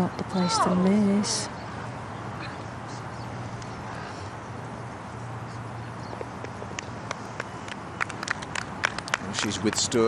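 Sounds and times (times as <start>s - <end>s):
spectators clapping: 6.4s - 10.0s.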